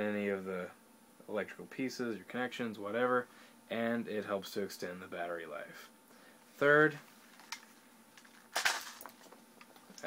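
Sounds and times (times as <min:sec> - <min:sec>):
toy gun parts clattering: 0:08.2 - 0:09.4.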